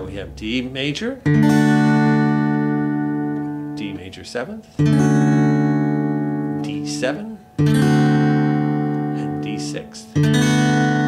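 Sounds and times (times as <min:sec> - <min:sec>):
person speaking: 0:00.0 - 0:01.4, 0:03.5 - 0:04.9, 0:06.6 - 0:07.6, 0:09.0 - 0:10.3
acoustic guitar chord ringing: 0:00.0 - 0:11.0.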